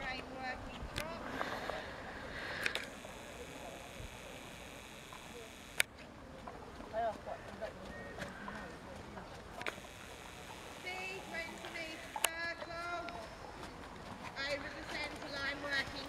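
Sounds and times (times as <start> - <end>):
faint voices talking: 0.0 - 16.0
low outdoor background noise: 0.0 - 16.0.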